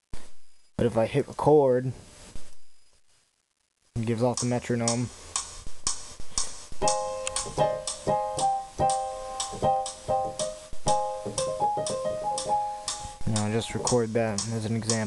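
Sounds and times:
metronome ticking: 0:04.0 - 0:15.0
electric piano chords: 0:06.8 - 0:14.2.

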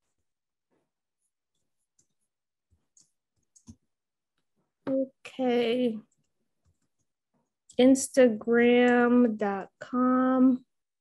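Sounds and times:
computer keyboard typing: 0:02.8 - 0:03.8.

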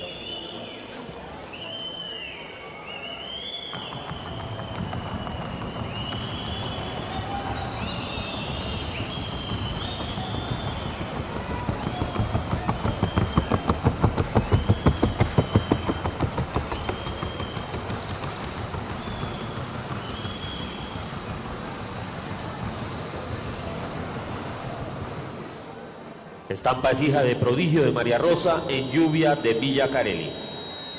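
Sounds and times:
horse hooves beating: 0:03.7 - 0:23.8.

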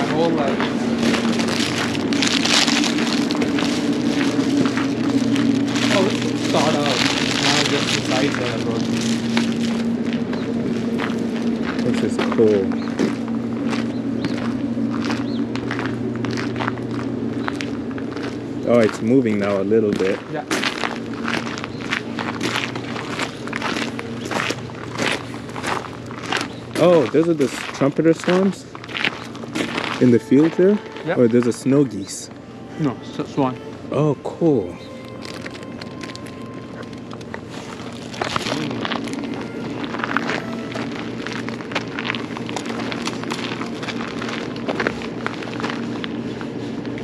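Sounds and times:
footsteps crunching on gravel: 0:00.0 - 0:47.0
steady low hum: 0:00.0 - 0:47.0.

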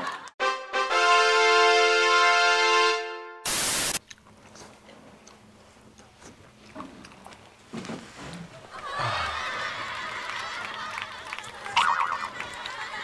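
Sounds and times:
burst of static: 0:03.5 - 0:04.0.

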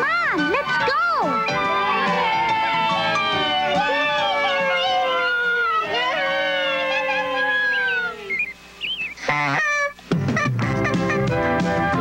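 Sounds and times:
music: 0:00.0 - 0:05.4, 0:10.1 - 0:12.0
cartoon bird chirps: 0:07.4 - 0:10.0
loud nasal honk: 0:09.2 - 0:10.0.

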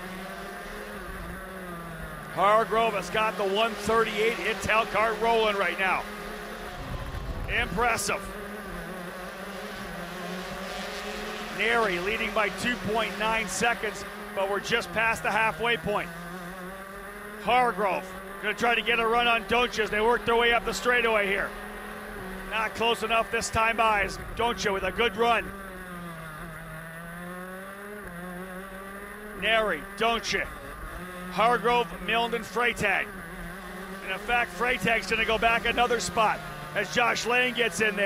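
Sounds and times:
kart engine buzzing at high revs: 0:00.0 - 0:38.0.

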